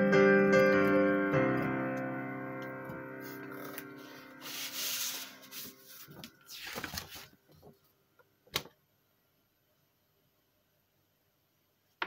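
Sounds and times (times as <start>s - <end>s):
piano chord ringing: 0.0s - 4.6s
paper rustling: 3.2s - 7.8s.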